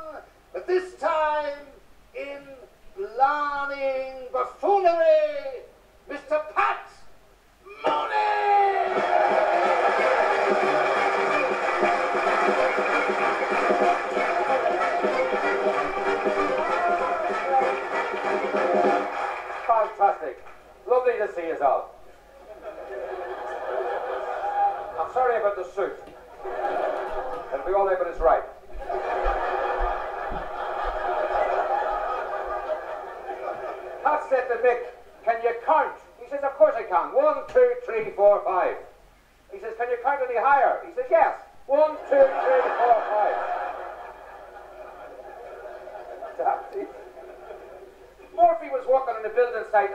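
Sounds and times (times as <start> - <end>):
man announcing theatrically: 0.0 - 7.1, 7.7 - 9.0, 19.6 - 22.0, 24.8 - 26.0, 27.5 - 28.6, 34.0 - 38.9, 39.5 - 43.3, 48.3 - 49.9
audience laughing: 8.9 - 19.7, 22.3 - 25.1, 26.2 - 27.8, 28.7 - 34.1, 41.9 - 48.4.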